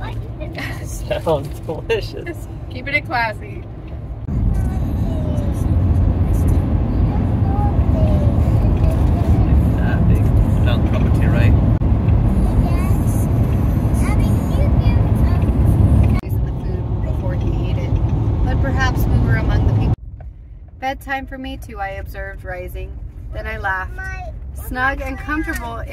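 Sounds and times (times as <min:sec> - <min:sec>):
car cabin road rumble: 0:00.0 - 0:25.9.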